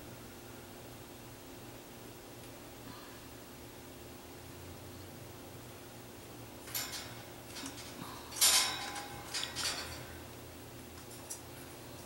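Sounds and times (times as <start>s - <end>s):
small clinks of beads: 6.6s - 10.2s.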